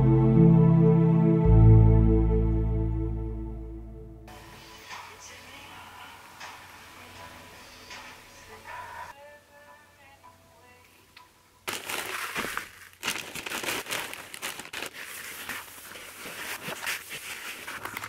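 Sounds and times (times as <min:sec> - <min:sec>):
wood shavings rustling and crunching: 0:11.7 - 0:18.0.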